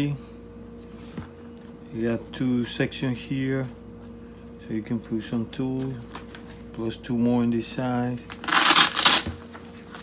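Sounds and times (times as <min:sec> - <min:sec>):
nylon bag fabric rasping: 0:08.4 - 0:09.4.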